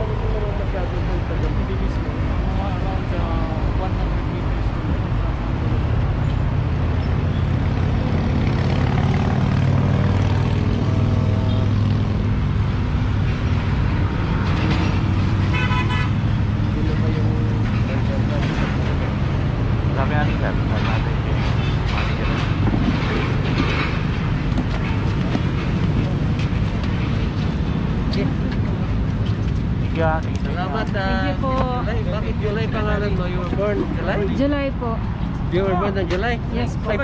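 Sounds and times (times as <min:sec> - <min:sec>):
low rumble of road traffic: 0:00.0 - 0:37.0
vehicle horn tooting: 0:15.5 - 0:16.2.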